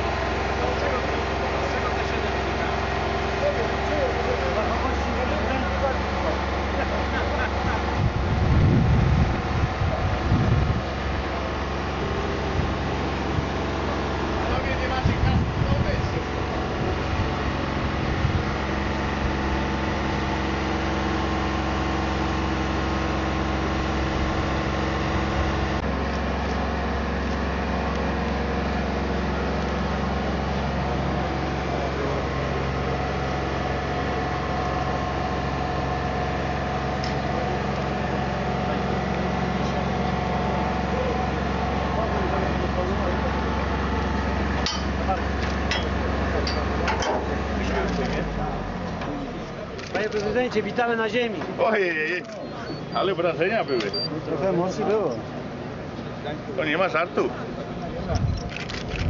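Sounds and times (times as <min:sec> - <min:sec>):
heavy machinery engine running: 0:00.0 - 0:59.0
faint murmuring voices: 0:36.9 - 0:50.7, 0:51.4 - 0:58.9.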